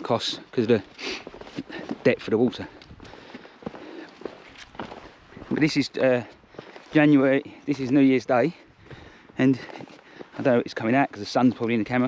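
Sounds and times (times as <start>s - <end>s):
footsteps on stony path: 0.0s - 12.0s.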